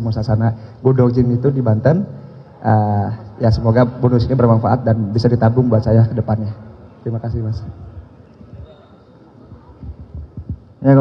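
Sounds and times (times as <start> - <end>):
man speaking: 0.0 - 7.8, 10.8 - 11.0
microphone handling thumps: 9.5 - 10.8.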